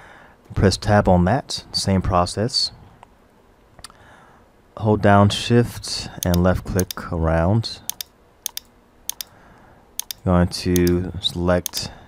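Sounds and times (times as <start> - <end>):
computer mouse clicks: 6.2 - 7.0, 7.9 - 9.3, 10.0 - 10.2, 10.8 - 11.0, 11.6 - 11.9.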